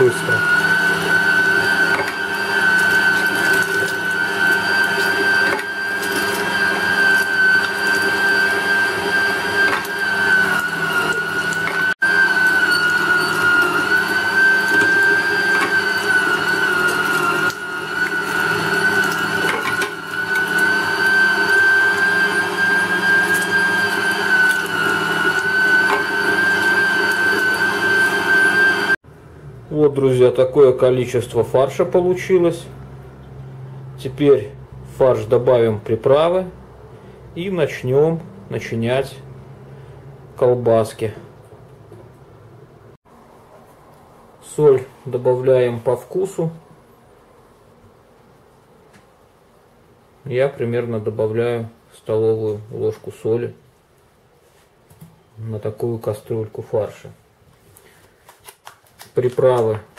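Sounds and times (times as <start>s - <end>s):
electric meat grinder motor whine: 0.0s - 29.0s.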